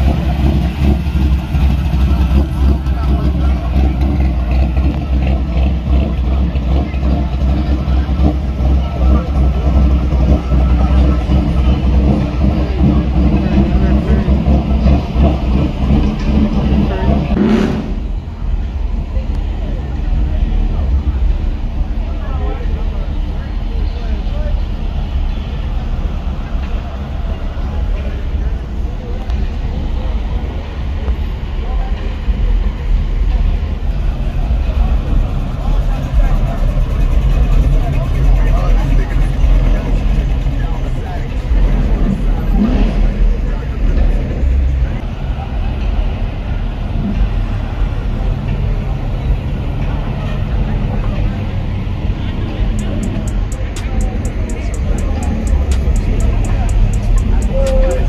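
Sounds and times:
car engines running loudly: 0:00.0 - 0:58.0
people talking: 0:00.0 - 0:58.0.

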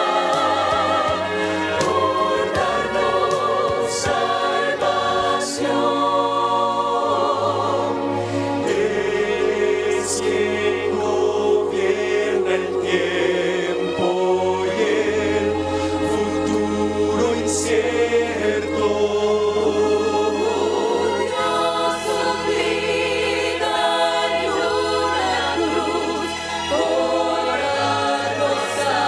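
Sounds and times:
mixed choir singing in harmony: 0:00.0 - 0:29.0.

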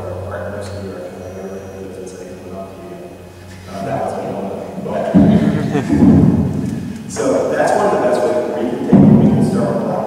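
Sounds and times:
man speaking: 0:03.7 - 0:06.1.

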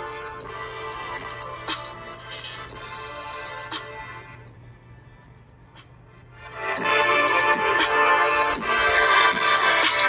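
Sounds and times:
trap beat through tablet speakers: 0:00.0 - 0:10.0
light hi-hat ticks: 0:04.5 - 0:05.9.

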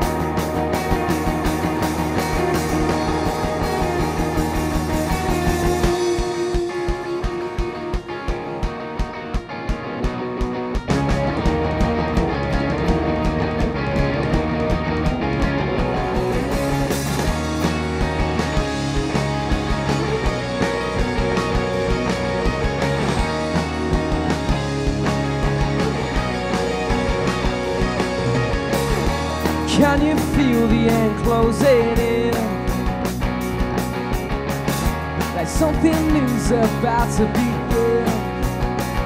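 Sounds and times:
bass guitar: 0:00.0 - 0:39.0
drum kit beat: 0:00.0 - 0:39.0
electric guitars: 0:00.0 - 0:39.0.

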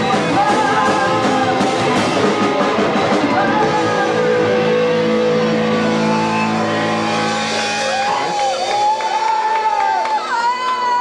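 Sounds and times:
metal band distorted guitar chord: 0:00.0 - 0:08.7.

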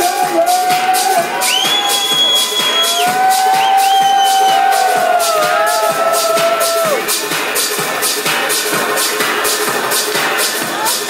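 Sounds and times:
crowd cheering: 0:00.0 - 0:07.2
electronic dance music: 0:00.0 - 0:11.0.

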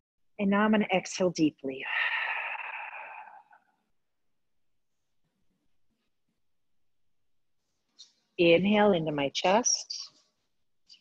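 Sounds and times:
woman exhaling deeply: 0:01.9 - 0:03.6.

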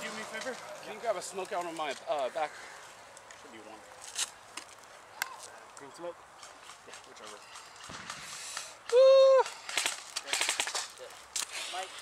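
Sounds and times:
airsoft guns firing: 0:07.5 - 0:09.0, 0:09.6 - 0:10.9.

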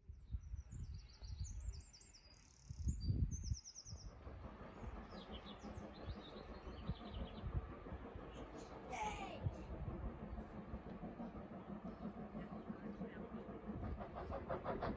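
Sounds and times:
songbirds chirping: 0:00.2 - 0:08.8.

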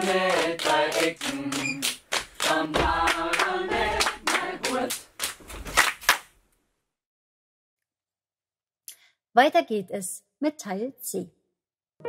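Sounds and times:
people clapping hands: 0:00.0 - 0:06.4.

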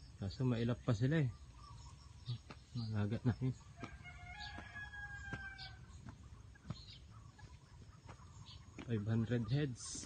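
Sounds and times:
rooster crowing: 0:03.8 - 0:05.9.

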